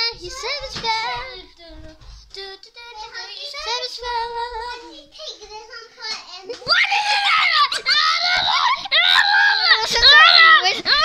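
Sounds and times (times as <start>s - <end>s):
girl screaming high-pitched: 6.7s - 11.0s.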